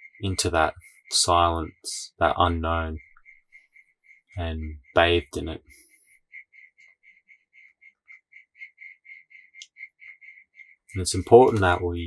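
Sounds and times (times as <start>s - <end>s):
rapid high animal chirps: 5.7s - 11.0s.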